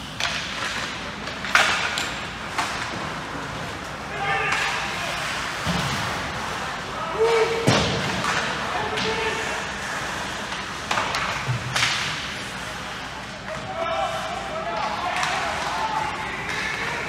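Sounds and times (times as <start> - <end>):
hockey sticks cracking on puck: 0.0 - 17.0
people calling and shouting: 0.2 - 11.5, 12.1 - 17.0.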